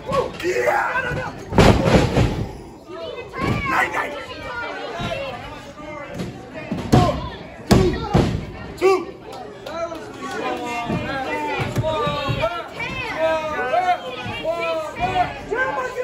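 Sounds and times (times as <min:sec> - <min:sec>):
body slamming onto ring: 0:01.5 - 0:02.6.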